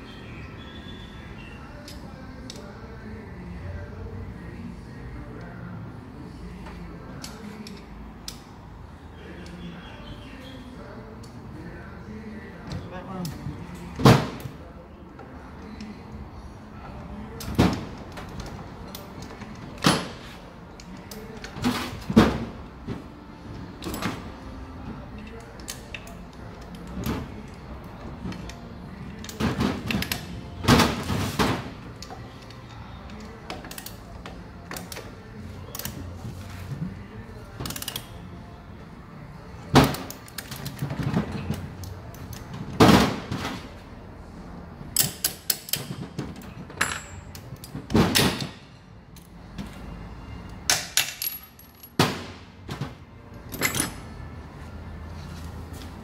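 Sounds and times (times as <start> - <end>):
metal parts and tools clinking: 45.0 - 47.9, 50.7 - 52.0, 53.4 - 54.2.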